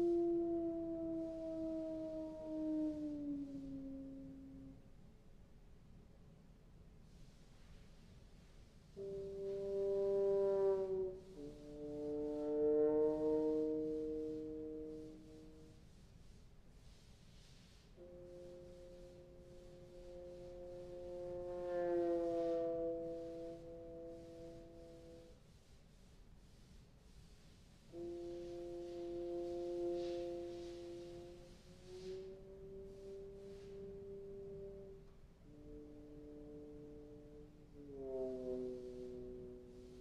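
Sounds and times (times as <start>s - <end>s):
bass trombone multiphonic: 0.0s - 4.8s, 8.9s - 15.8s, 18.0s - 25.4s, 27.9s - 40.0s.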